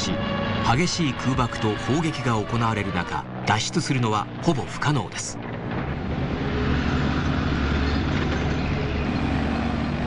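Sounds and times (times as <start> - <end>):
truck engines running: 0.0 - 10.0.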